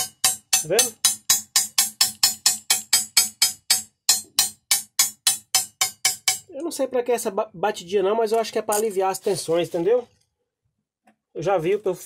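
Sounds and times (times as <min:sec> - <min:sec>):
glass cutter tapping on glass: 0:00.0 - 0:06.6.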